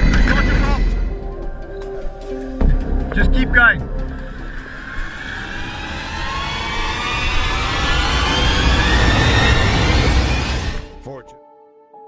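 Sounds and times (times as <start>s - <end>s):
car engine revving: 3.9s - 11.0s.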